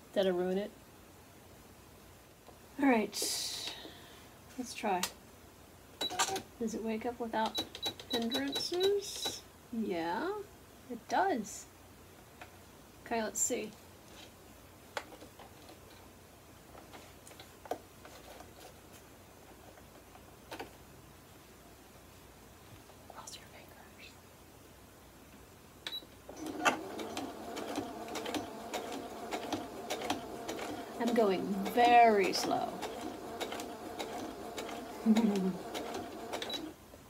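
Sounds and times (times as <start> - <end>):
sewing machine stitching: 26.3 - 36.7.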